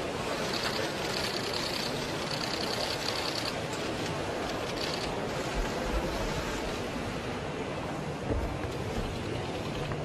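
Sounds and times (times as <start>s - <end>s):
crowd hum in large hall: 0.0s - 10.0s.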